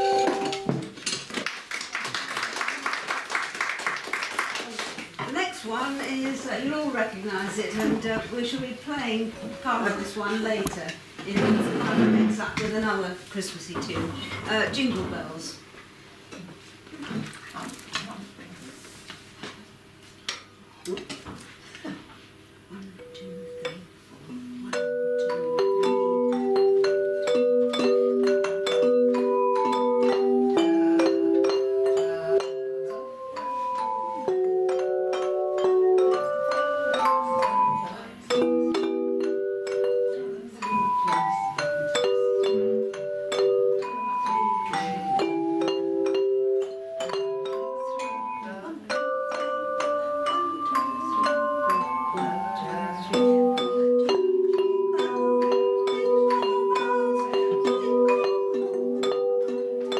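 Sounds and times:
tuned metal plates ringing melody: 0.0 - 0.8, 9.1 - 10.6, 23.0 - 59.9.

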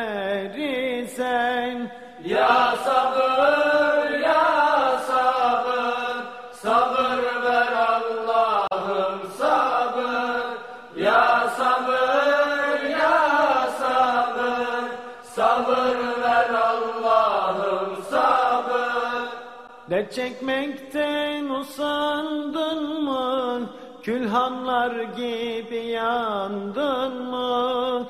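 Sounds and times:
person singing a hymn unaccompanied: 0.0 - 28.0.

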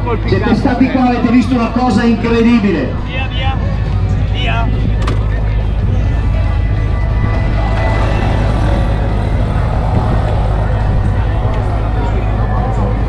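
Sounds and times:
indistinct chatter of people: 0.0 - 13.0
low rumble: 0.0 - 13.0.

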